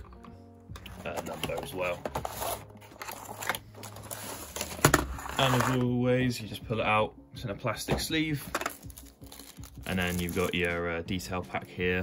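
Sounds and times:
cardboard box rustling: 1.0 - 5.8.

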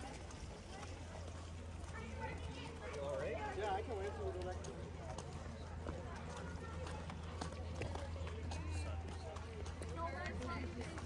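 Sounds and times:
crowd chatter: 0.0 - 11.0
footsteps on wet concrete: 0.0 - 11.0.

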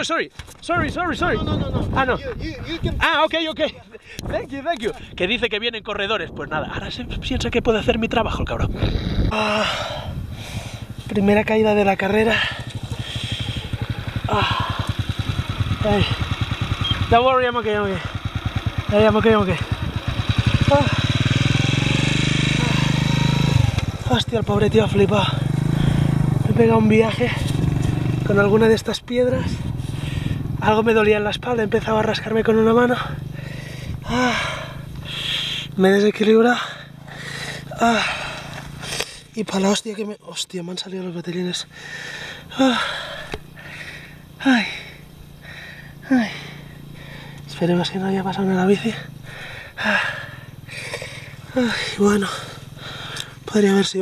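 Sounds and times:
breathy exhales: 8.8 - 11.0, 12.4 - 15.3, 25.6 - 26.2, 29.7 - 30.5, 33.1 - 35.8, 36.6 - 39.3, 41.7 - 47.5, 49.0 - 53.4
small motorcycle engine running: 8.8 - 39.4, 41.5 - 54.0
man groaning in pain: 9.1 - 10.2, 22.5 - 23.6, 34.0 - 35.2, 37.2 - 38.4, 42.5 - 43.8, 46.0 - 46.6, 49.8 - 53.1
man grunting: 9.1 - 10.2, 14.3 - 14.9, 22.5 - 23.2, 34.0 - 35.5, 36.8 - 38.4, 42.6 - 43.8, 44.4 - 45.0, 46.0 - 46.6, 49.8 - 53.0.

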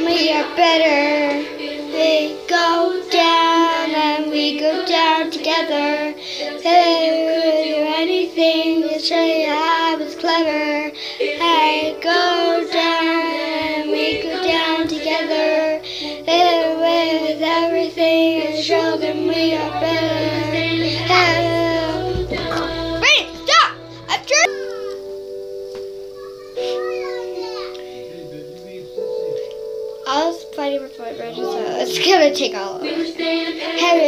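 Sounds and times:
girl singing pop song: 0.0 - 25.2, 26.4 - 28.1, 30.0 - 34.0
backing music: 0.0 - 34.0.

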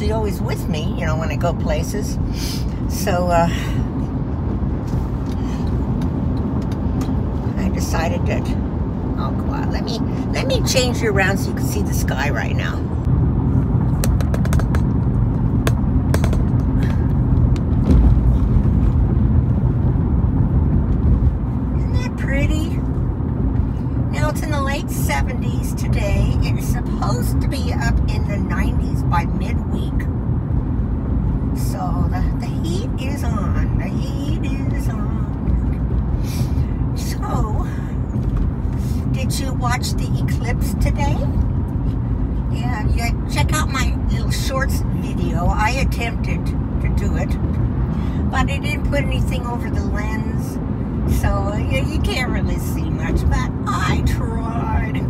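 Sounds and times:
car road and engine noise: 0.0 - 55.0.

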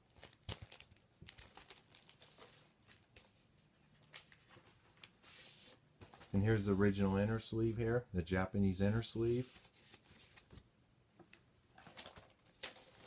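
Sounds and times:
paper sleeve sliding rustle: 4.3 - 7.4, 9.2 - 10.6.

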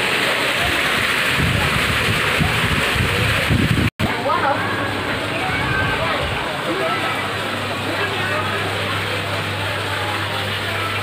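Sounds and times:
fountain water splashing into pond: 0.0 - 11.0
low rumbling on microphone: 0.5 - 10.6.

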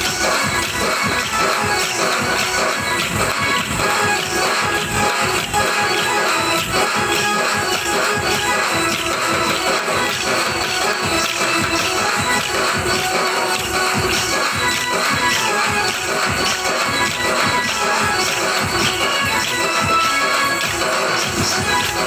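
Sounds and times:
drum playing: 0.0 - 22.0
electronic keyboard: 0.0 - 22.0.

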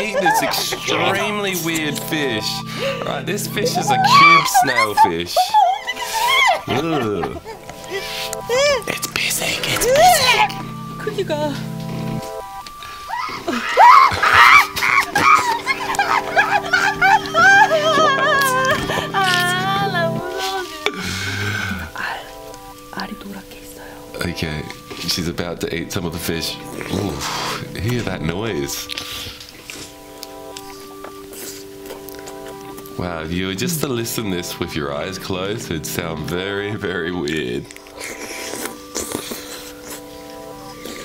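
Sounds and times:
woman squealing and crying: 0.0 - 1.1, 3.7 - 7.6, 8.5 - 8.9, 13.1 - 21.0
background music with held notes: 0.0 - 41.0
biting and chewing: 28.9 - 33.0, 37.6 - 41.0.

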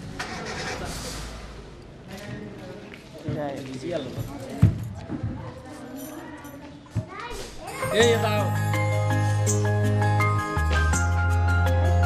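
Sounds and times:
indistinct chatter: 0.0 - 9.9
child's voice: 6.2 - 8.0.

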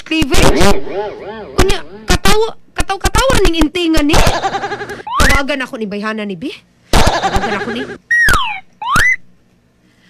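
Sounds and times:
sweeping electronic phone tone: 0.5 - 2.1.

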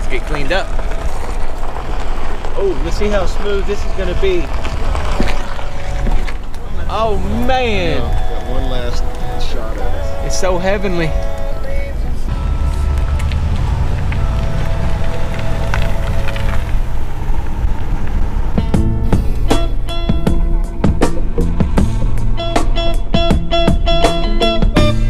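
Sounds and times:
truck driving rumble: 0.0 - 25.0
plucked guitar music: 5.5 - 16.7, 18.4 - 25.0.

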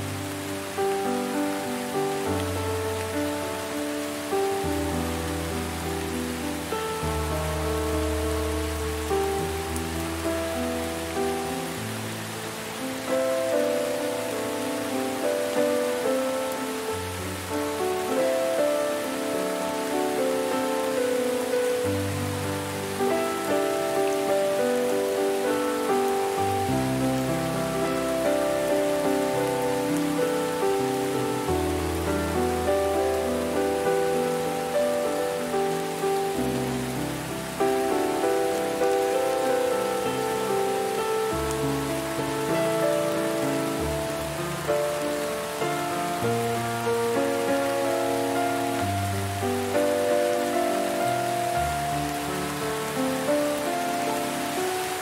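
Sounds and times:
slow calm music: 0.0 - 55.0
steady rain hissing: 0.0 - 55.0.

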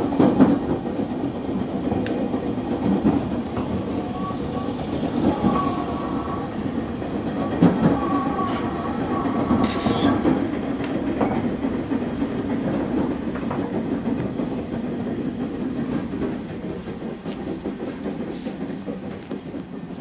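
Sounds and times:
rail-joint clatter: 0.0 - 20.0
train wheels rumbling on rails: 0.0 - 20.0.

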